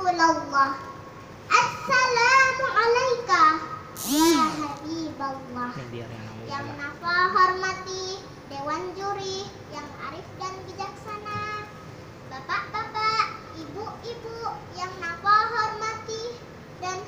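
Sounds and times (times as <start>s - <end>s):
girl preaching over microphone: 1.5s - 11.7s, 12.3s - 17.0s.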